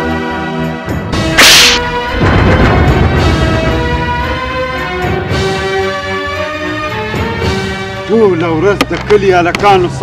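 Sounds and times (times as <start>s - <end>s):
dramatic score with sustained tones: 1.2s - 7.2s
loud short swish: 1.4s - 2.1s.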